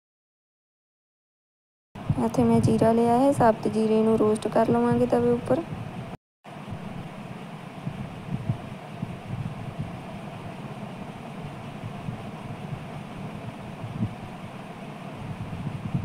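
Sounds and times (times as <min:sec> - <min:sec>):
gas stove burner rumbling: 0:02.0 - 0:16.0.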